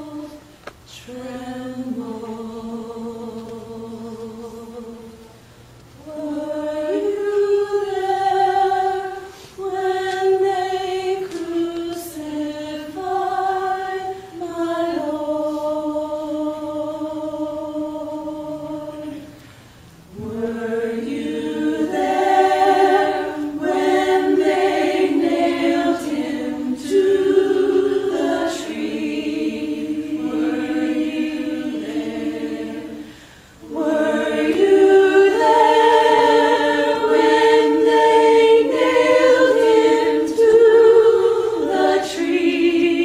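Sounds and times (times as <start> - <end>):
choir singing sustained chords: 0.0 - 43.0.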